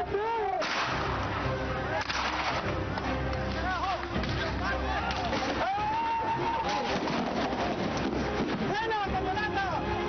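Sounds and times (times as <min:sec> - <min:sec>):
loud outdoor blast: 0:00.6 - 0:02.7
people shouting: 0:04.7 - 0:07.8.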